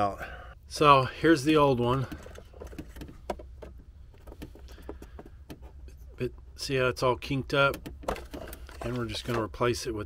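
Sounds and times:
steady low hum: 0.1s - 9.0s
rubber hose clicks and rustles: 1.6s - 6.1s, 7.5s - 9.6s.

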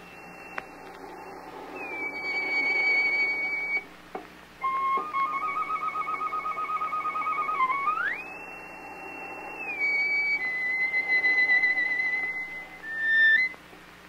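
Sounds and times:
solo violin with vibrato: 4.7s - 13.5s.

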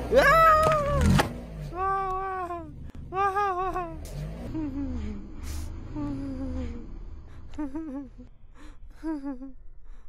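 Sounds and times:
high-pitched voice-like cry: 0.1s - 1.1s, 1.8s - 4.0s.

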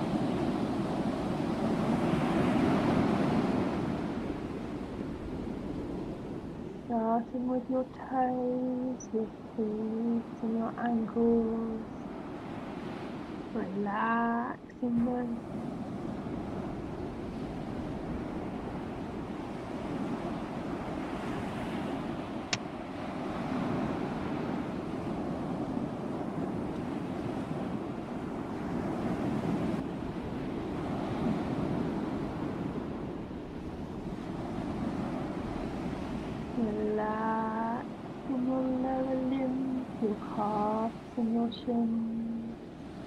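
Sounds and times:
sea surf breaking on beach: 0.0s - 6.7s, 15.2s - 38.4s
wind on microphone: 0.0s - 43.0s.

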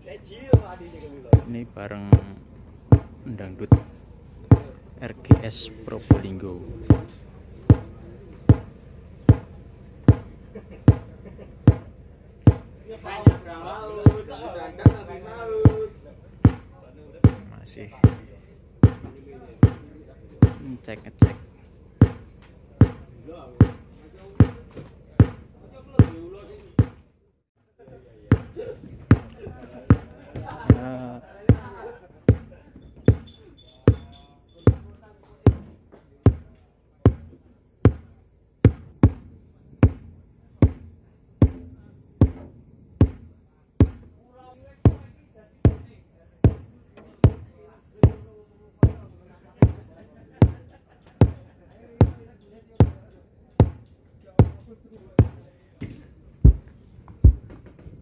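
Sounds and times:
deep kick drum thumps over pa: 1.4s - 7.1s, 7.7s - 10.3s, 11.7s - 15.1s, 15.7s - 21.4s, 22.0s - 24.6s, 25.2s - 25.4s, 28.3s - 31.7s, 32.3s - 32.5s, 36.3s - 36.5s, 37.1s - 44.2s, 44.8s - 45.1s, 45.7s - 50.6s, 52.8s - 53.0s, 53.6s - 53.8s, 54.4s - 54.6s, 56.4s - 57.5s.

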